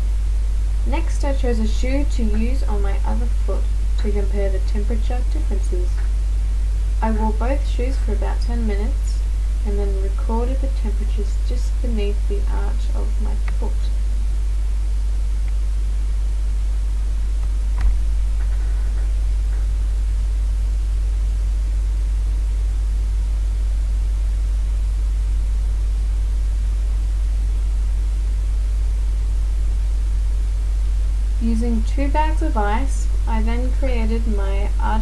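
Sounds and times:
low electrical hum with hiss: 0.0 - 35.0.

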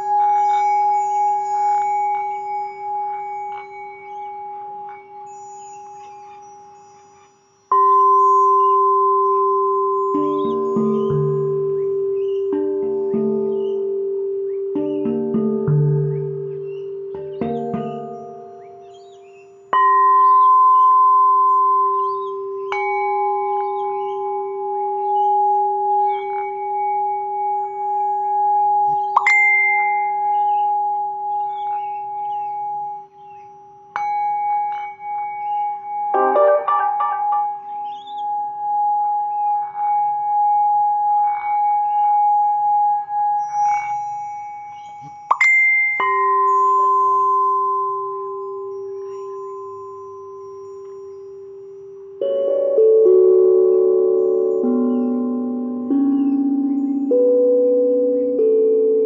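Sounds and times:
bright chime-like notes: 0.0 - 59.0
singing bowls ringing: 0.0 - 59.0.

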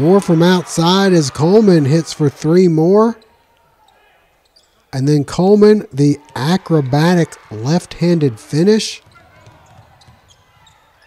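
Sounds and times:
low hall background noise: 0.0 - 11.0.

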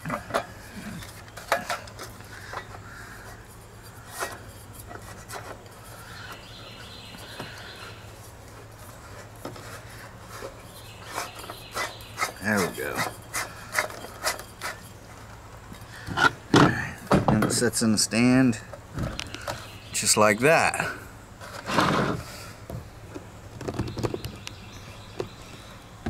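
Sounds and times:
plastic and metal scraping: 0.0 - 6.6, 8.5 - 15.3, 16.0 - 17.6, 21.4 - 22.5.

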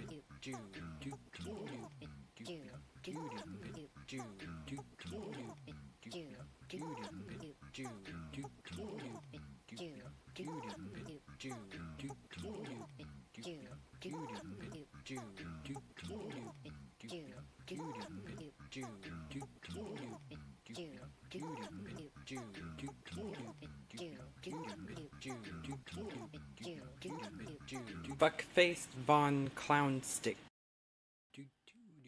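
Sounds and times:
electronic music of cut-up voices: 0.0 - 28.3.

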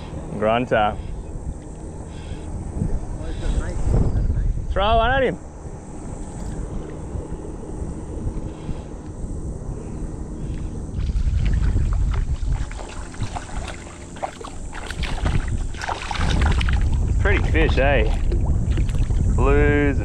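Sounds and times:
wind on microphone: 0.0 - 20.0
fish splashing in water: 10.9 - 19.2.

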